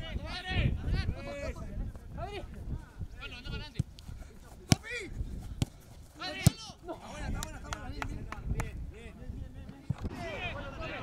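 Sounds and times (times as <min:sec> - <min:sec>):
football kicks: 0:03.6 - 0:06.8.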